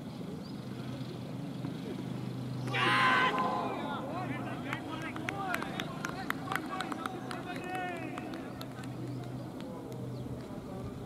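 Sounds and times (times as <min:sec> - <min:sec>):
steady low hum: 0:00.0 - 0:11.0
distant players calling out: 0:02.4 - 0:10.4.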